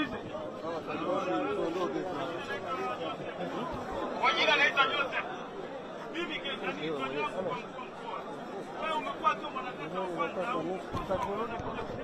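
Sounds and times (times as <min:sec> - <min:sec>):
crowd talking: 0:00.0 - 0:12.0.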